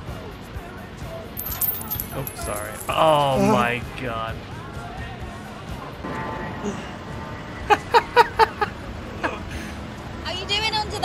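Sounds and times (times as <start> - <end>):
coins clinking: 1.4 - 3.8.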